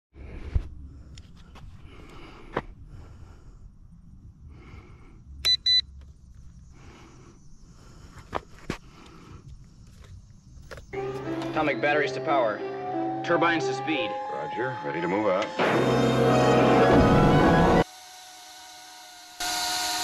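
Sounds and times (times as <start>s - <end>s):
short electronic beeps: 5.4s - 5.9s.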